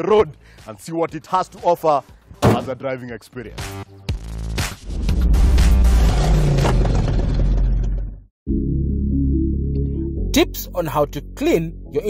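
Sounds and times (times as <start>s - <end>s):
car engine revving: 4.8s - 8.2s.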